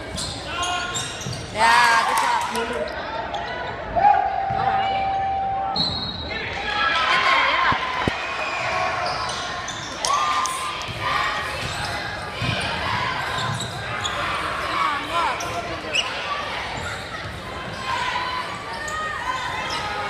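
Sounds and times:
sneakers squeaking: 0.0 - 3.8, 8.6 - 20.0
spectators' voices: 0.0 - 20.0.

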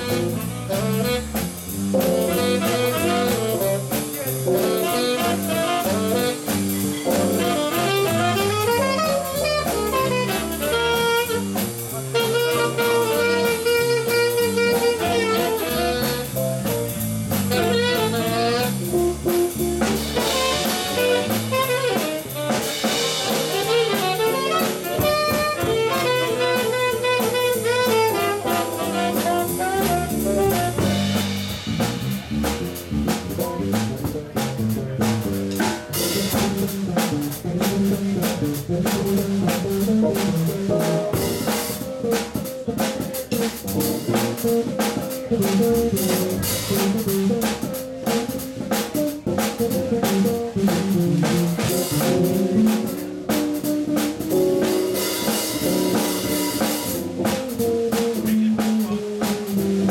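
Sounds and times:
saxophone melody: 0.0 - 31.4, 45.4 - 59.9
drum kit and cymbals: 0.0 - 59.9
electric bass guitar: 0.0 - 59.9.

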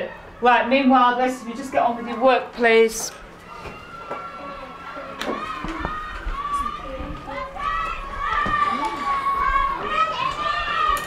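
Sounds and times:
children's voices overlapping: 0.0 - 11.0.

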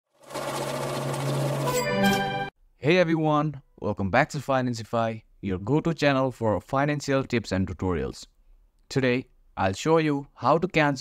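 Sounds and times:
ringing chord: 0.3 - 2.5.

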